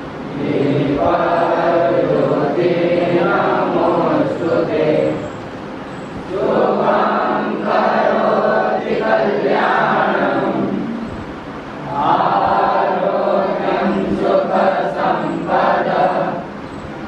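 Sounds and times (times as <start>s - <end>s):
young voices chanting in unison: 0.2s - 5.5s, 6.1s - 16.6s.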